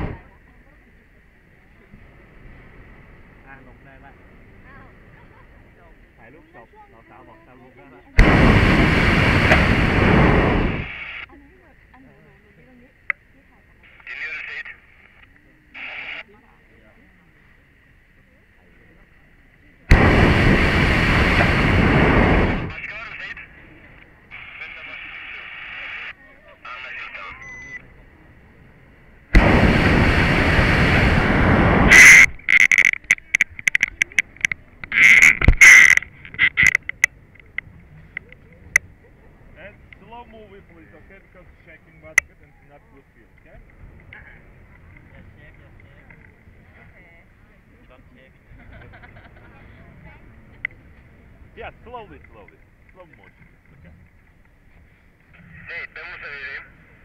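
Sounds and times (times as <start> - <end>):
propane burner blasts: 0.0 - 0.3, 8.2 - 11.3, 19.8 - 42.2
sharp irregular crackles and clicks: 31.9 - 38.8, 52.1 - 54.6.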